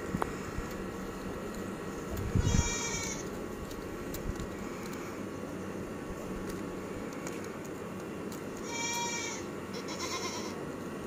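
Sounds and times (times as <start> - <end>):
steady background hiss: 0.0 - 11.0
young animal bleating: 2.3 - 3.3, 8.6 - 10.6.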